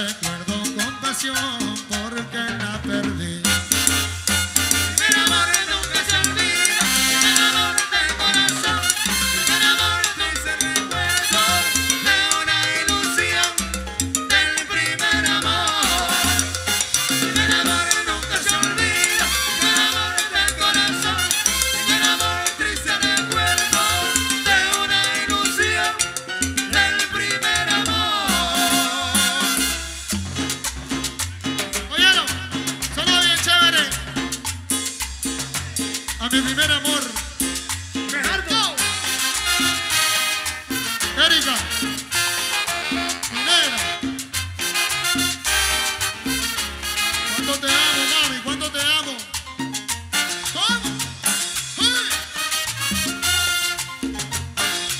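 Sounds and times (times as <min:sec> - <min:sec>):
trombone: 0:00.0 - 0:49.2, 0:50.0 - 0:54.9
latin dance orchestra playing: 0:00.0 - 0:54.9
saxophone: 0:03.6 - 0:13.7, 0:14.3 - 0:26.1, 0:27.1 - 0:30.1, 0:38.8 - 0:48.4, 0:51.6 - 0:54.9.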